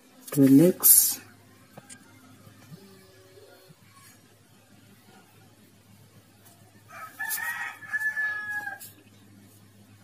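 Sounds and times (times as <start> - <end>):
rooster crowing: 6.8 - 9.0.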